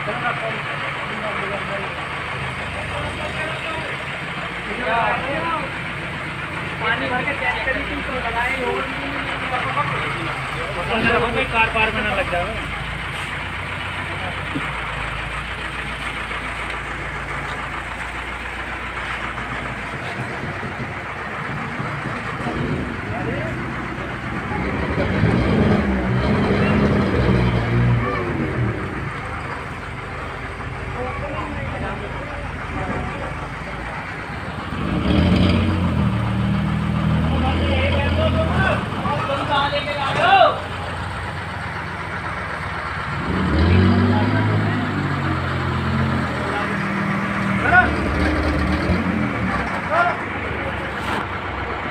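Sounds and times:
people talking: 0.0 - 51.9.

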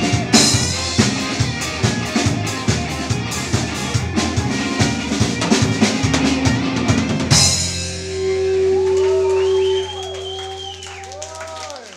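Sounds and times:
live punk band playing: 0.0 - 11.7
electric guitars bending notes: 0.0 - 11.9
cymbal crash: 7.4 - 10.8.

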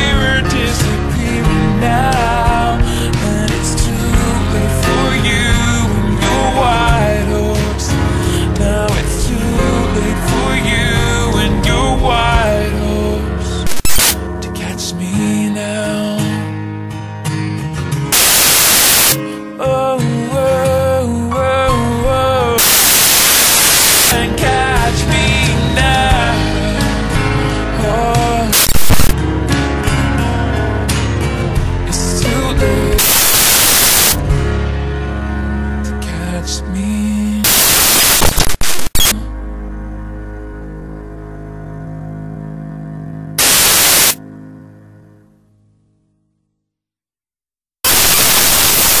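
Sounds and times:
song music: 0.0 - 15.1, 18.1 - 19.2, 21.7 - 41.4, 43.4 - 44.2
loud static hiss: 13.6 - 14.2, 18.1 - 19.2, 22.6 - 24.3, 28.5 - 29.2, 33.0 - 34.3, 37.4 - 39.2, 43.4 - 44.2, 47.8 - 49.0.

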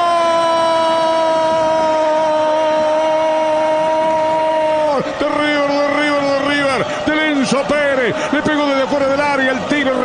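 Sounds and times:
man shouting goal cry: 0.0 - 10.0.

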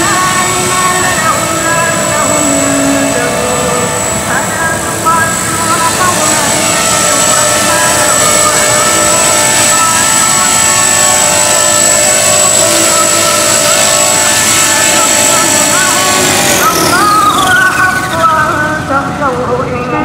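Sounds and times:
rc helicopter whine: 0.0 - 20.0.

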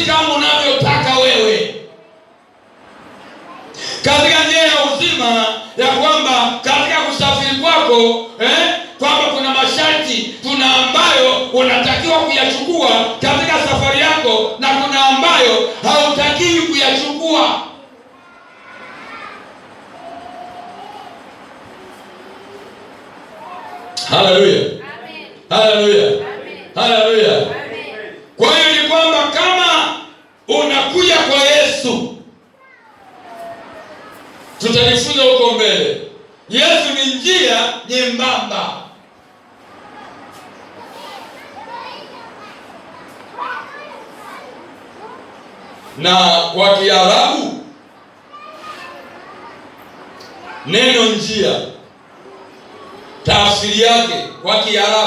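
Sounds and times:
faint distant voices: 0.0 - 55.0
children chattering and calling: 1.8 - 4.8, 15.0 - 28.7, 32.3 - 35.2, 38.9 - 55.0.

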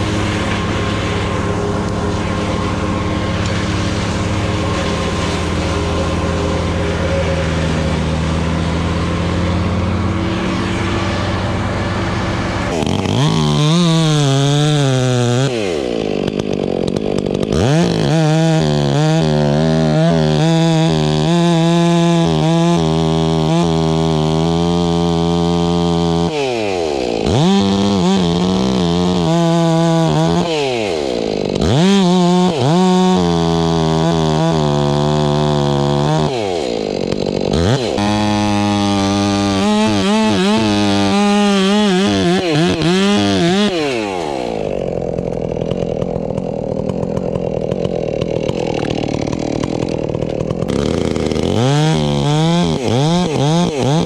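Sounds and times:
chainsaw revving: 0.0 - 54.0.

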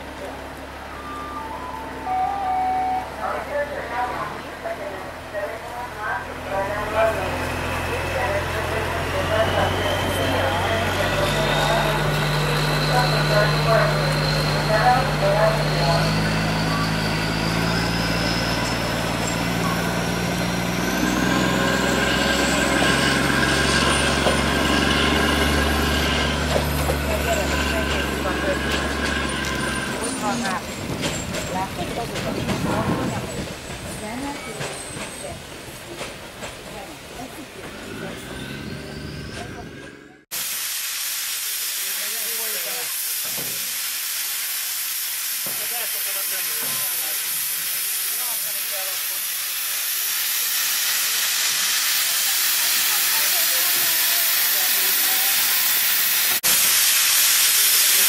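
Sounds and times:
diesel locomotive engine: 0.0 - 58.0
train carriages rolling: 5.4 - 40.3.

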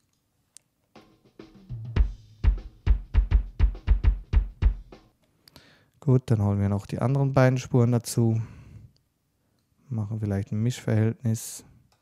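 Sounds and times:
faint snare and cymbals: 0.9 - 5.2
deep kick drum hits: 1.7 - 5.0.

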